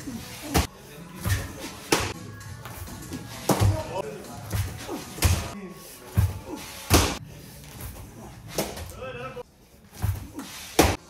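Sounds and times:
background music: 0:00.0 - 0:11.0
baseballs smacking into gloves: 0:00.4 - 0:02.2.

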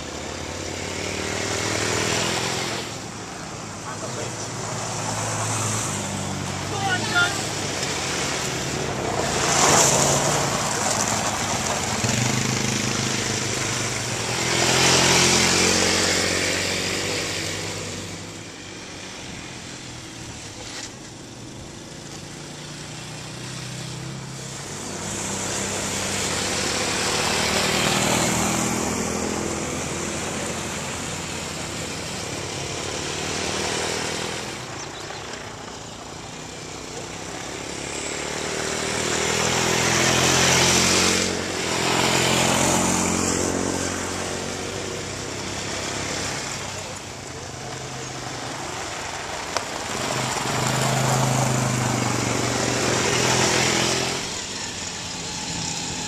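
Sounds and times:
quad bike engines: 0:00.0 - 0:56.0.

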